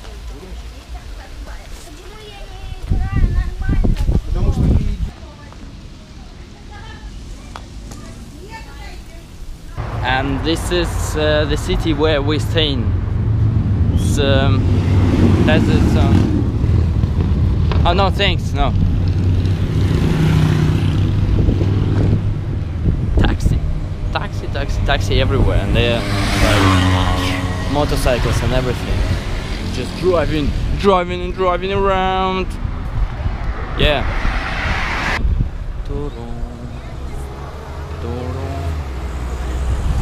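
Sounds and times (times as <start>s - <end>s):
low engine rumble: 0.0s - 19.9s
street traffic: 0.0s - 40.0s.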